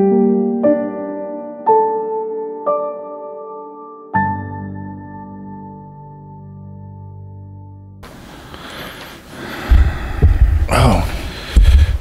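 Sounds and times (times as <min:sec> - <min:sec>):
microphone handling thumps: 0:09.6 - 0:12.0
man's voice: 0:10.6 - 0:11.5.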